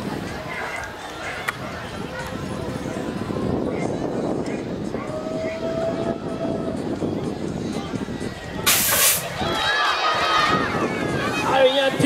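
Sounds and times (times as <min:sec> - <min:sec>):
people shouting: 0:04.9 - 0:06.8, 0:09.2 - 0:12.0
air release hiss: 0:08.7 - 0:09.3.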